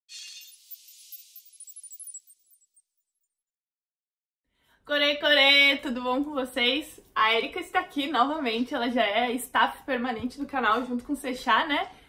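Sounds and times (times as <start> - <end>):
bright high-pitched burst: 0.1 - 2.6
very high tinkles: 0.1 - 3.2.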